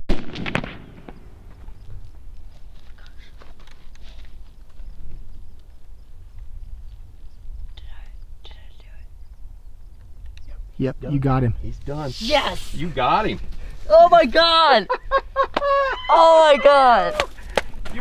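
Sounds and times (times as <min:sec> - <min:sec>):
rifle shot with echo: 0:00.0 - 0:01.4.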